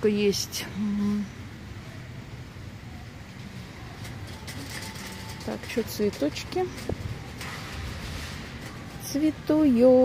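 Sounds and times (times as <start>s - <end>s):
hypermarket hall hum and hiss: 0.0s - 10.0s.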